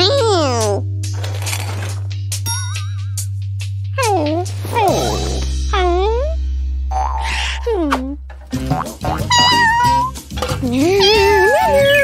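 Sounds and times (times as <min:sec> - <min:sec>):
bouncy children's tune: 0:00.0 - 0:00.8, 0:02.4 - 0:12.0
cartoon character vocal sounds: 0:04.0 - 0:08.2, 0:09.2 - 0:10.1, 0:10.8 - 0:12.0
swooping cat-like sound effects: 0:09.3 - 0:10.1.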